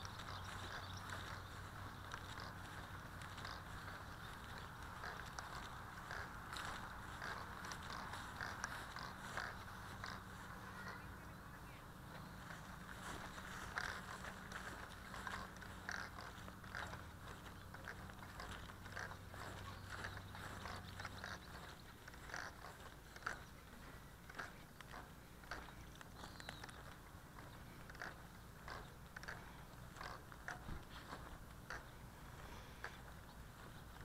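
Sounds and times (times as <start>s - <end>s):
footsteps on dry ground: 0.0s - 34.0s
low steady hum: 0.0s - 34.0s.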